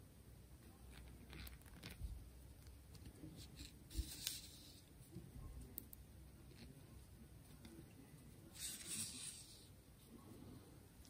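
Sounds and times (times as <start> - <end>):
faint rustles of thread: 0.6 - 11.0.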